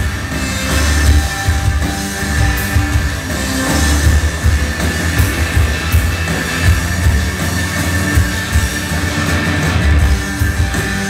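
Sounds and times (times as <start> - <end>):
rock band playing: 0.0 - 11.0.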